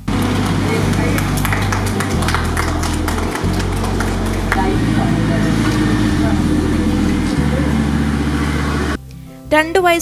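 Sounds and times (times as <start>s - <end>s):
crowd talking: 0.0s - 9.0s
loud steady rumble and hiss: 0.0s - 10.0s.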